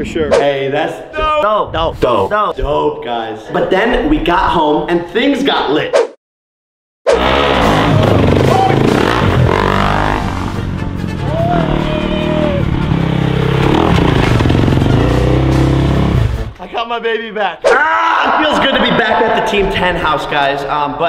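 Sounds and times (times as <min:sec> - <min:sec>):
dirt bike engine revving: 0:07.1 - 0:10.8, 0:11.6 - 0:16.5
music: 0:07.2 - 0:16.7.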